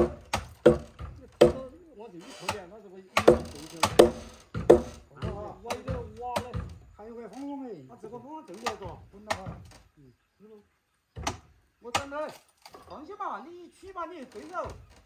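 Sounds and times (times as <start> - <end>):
hammer blows on timber: 3.2 - 6.8.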